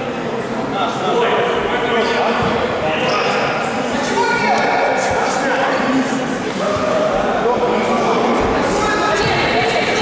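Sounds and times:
voices chattering in hall: 0.0 - 10.0.

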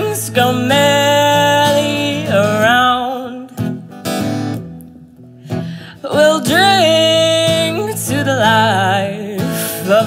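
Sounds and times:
woman singing with vibrato: 0.0 - 3.9, 5.9 - 10.0
acoustic guitar strumming: 0.0 - 10.0.

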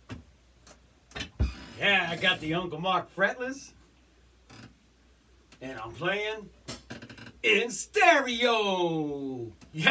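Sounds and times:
man talking: 1.8 - 3.8, 5.6 - 6.6, 7.4 - 9.9.

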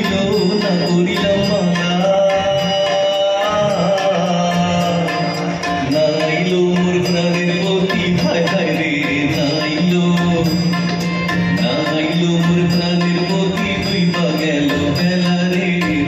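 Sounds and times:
drums beating: 0.0 - 16.0
gliding melody line: 0.0 - 16.0.

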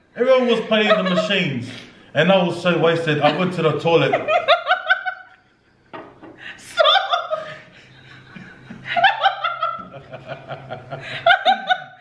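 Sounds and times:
woman laughing hard: 4.1 - 5.4, 6.4 - 12.0.

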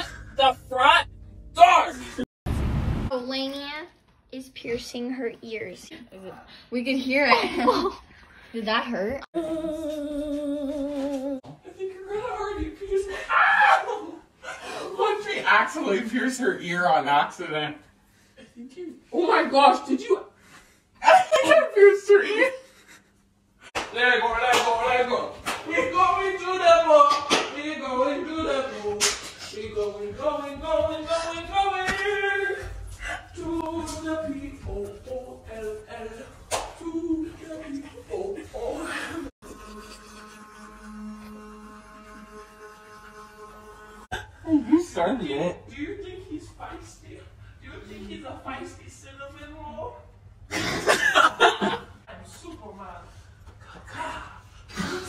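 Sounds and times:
electric toothbrush buzzing: 39.1 - 44.1.

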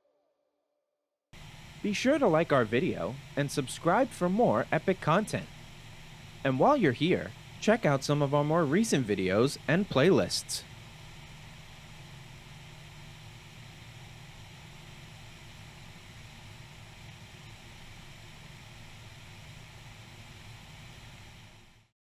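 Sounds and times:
light aircraft engine drone: 1.4 - 21.9.

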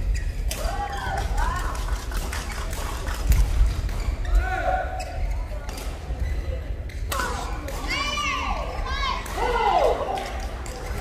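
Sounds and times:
sneakers squeaking on floor: 0.0 - 0.5, 3.7 - 7.6
voices in hall: 0.0 - 11.0.

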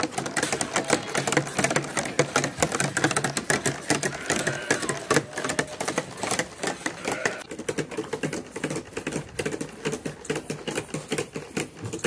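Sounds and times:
calves sucking and slurping milk: 0.0 - 12.0.

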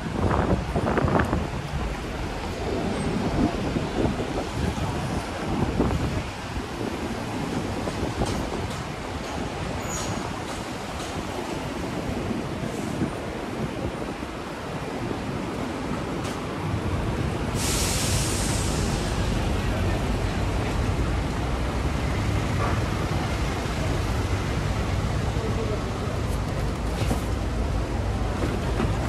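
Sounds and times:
wind on microphone: 0.0 - 15.4
street traffic noise: 0.0 - 29.0.

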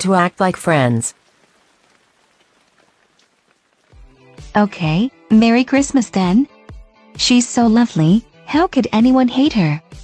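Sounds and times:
light raindrop ticks: 0.0 - 4.5
faint rain hiss: 0.0 - 6.4.

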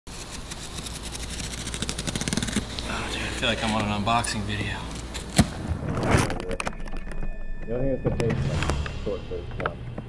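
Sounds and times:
packing tape pulled off box: 0.1 - 2.9
low steady hum: 0.1 - 10.0.

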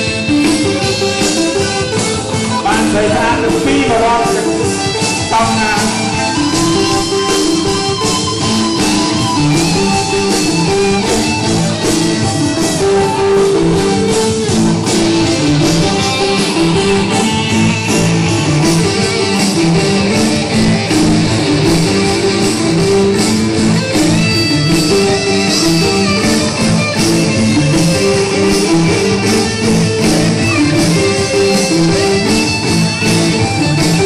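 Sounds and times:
band playing dance music: 0.0 - 34.0
electric guitar: 0.0 - 34.0
steady drum beat: 0.0 - 34.0.

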